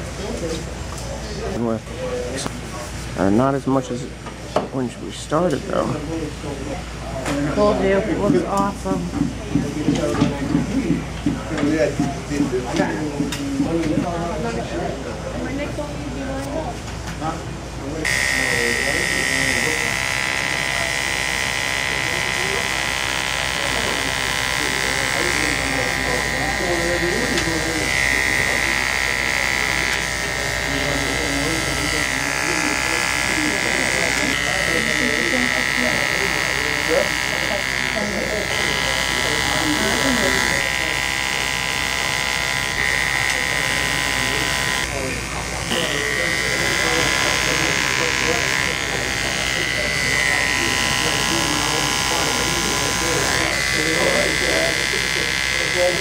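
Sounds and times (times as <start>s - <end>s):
electric hair clipper buzzing: 18.0s - 56.0s.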